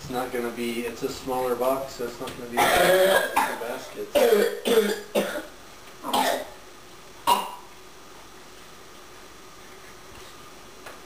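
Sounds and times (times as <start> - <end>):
person coughing: 2.6 - 5.5, 6.1 - 6.5.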